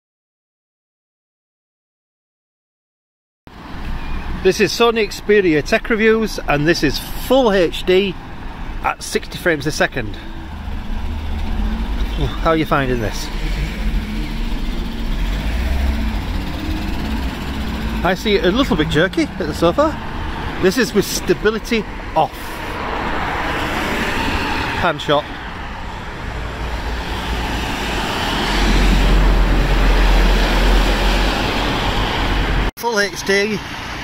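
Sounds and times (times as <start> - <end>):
car passing on wet road: 10.4 - 32.7.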